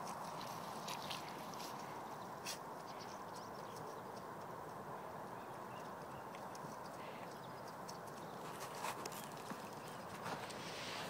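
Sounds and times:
dog paws scuffing in grass: 0.0s - 2.7s, 8.4s - 11.0s
outdoor hiss: 10.5s - 11.0s.

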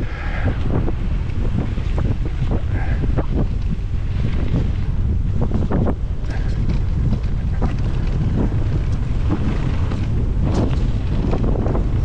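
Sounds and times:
bike tyres rumbling on dirt: 0.0s - 12.0s
wind rushing over microphone: 0.0s - 12.0s
bike knocks and rattles: 1.4s - 12.0s.

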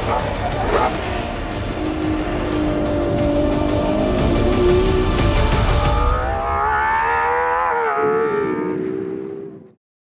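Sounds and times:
car engine at high revs: 0.0s - 5.8s.

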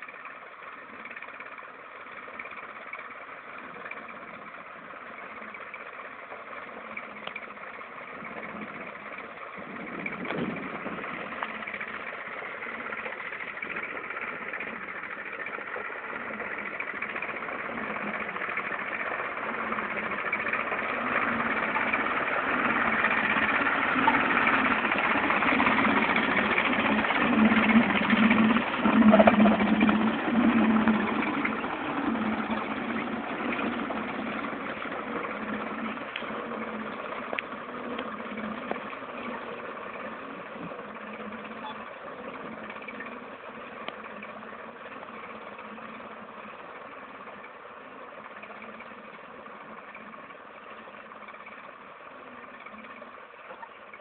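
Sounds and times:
tractor engine running: 0.0s - 54.0s.

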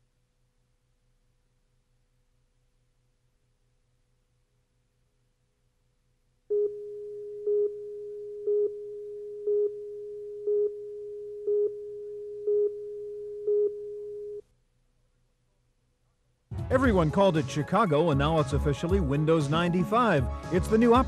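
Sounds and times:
steady countdown tone: 6.5s - 13.9s.

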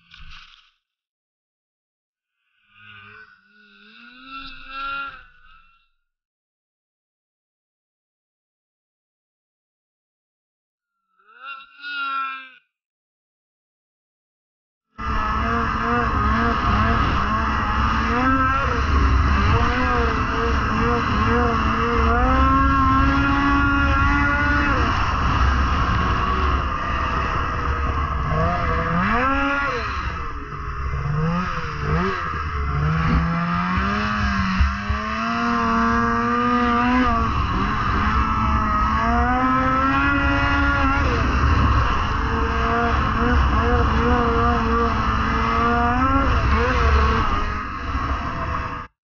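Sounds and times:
snowmobile engine revving: 2.8s - 5.8s, 15.0s - 48.9s
steady rush of noise: 15.1s - 45.8s.

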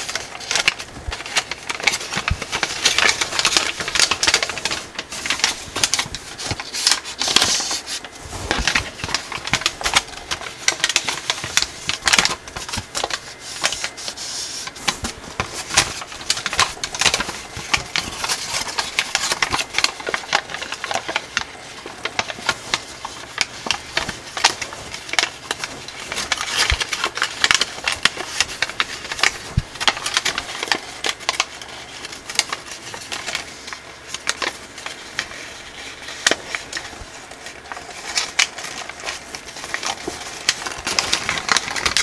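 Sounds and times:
foil paper crinkling: 0.0s - 42.0s.

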